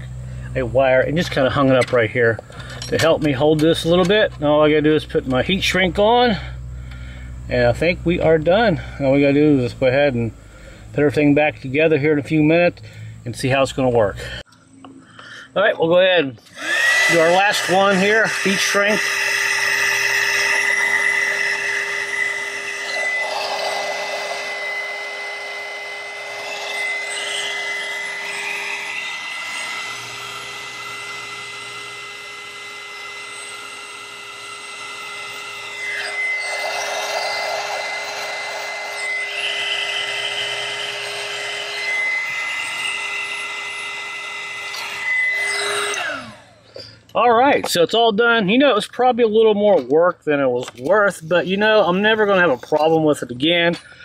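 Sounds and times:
heat gun motor whine: 0:16.0 - 0:47.2.

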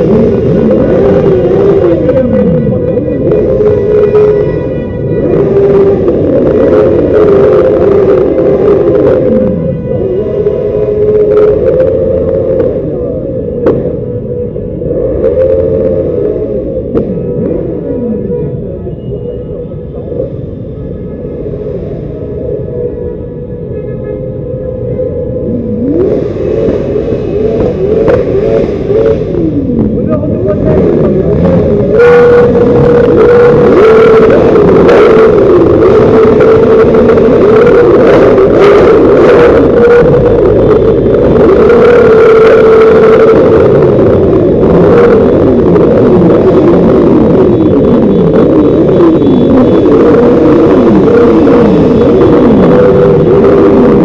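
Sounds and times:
vehicle engines revving: 0:00.0 - 0:54.0
voices: 0:00.0 - 0:54.0.

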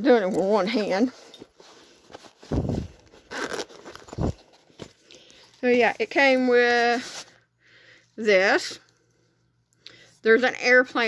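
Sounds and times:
short rustle: 0:01.0 - 0:07.4
phone microphone handling noise: 0:02.4 - 0:04.6.

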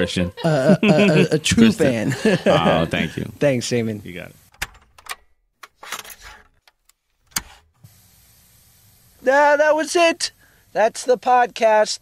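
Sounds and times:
person saying ah: 0:00.0 - 0:03.3
faint hiss with low hum: 0:00.0 - 0:04.6, 0:07.8 - 0:12.0.

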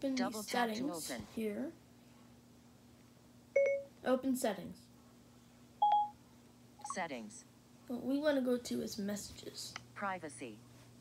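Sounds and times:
short electronic beep: 0:05.8 - 0:06.2.

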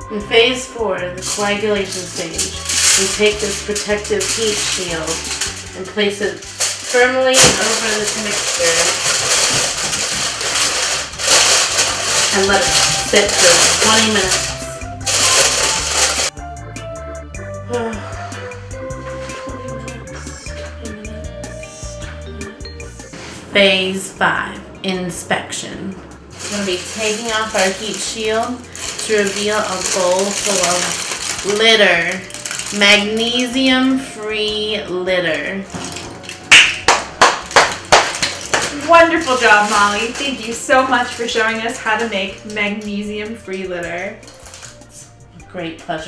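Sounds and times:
background music with bass line: 0:00.0 - 0:23.3
aluminium foil crinkling: 0:01.1 - 0:16.4, 0:26.3 - 0:34.0, 0:35.7 - 0:45.1
person clapping: 0:36.5 - 0:38.7.

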